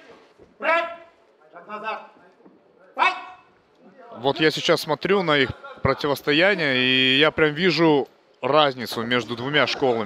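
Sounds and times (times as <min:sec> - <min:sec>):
faint arena background noise: 0:00.0 - 0:10.0.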